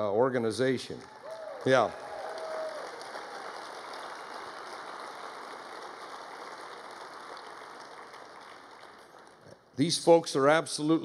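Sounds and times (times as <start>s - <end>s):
audience applauding: 1.0s - 9.5s.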